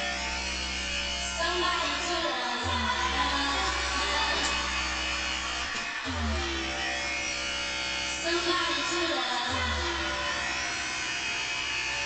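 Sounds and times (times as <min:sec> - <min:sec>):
low bass note: 0:00.0 - 0:08.8
gliding melody: 0:00.0 - 0:12.0.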